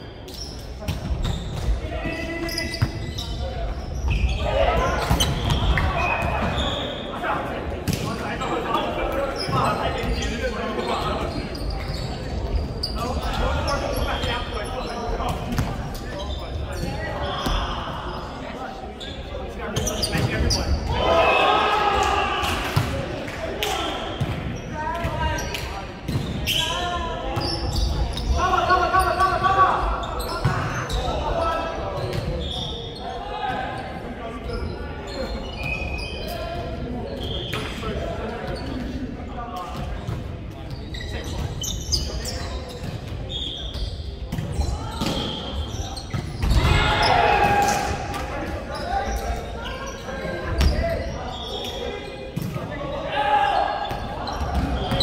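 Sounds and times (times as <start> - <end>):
players shouting: 20.7 - 24.2, 46.5 - 48.2.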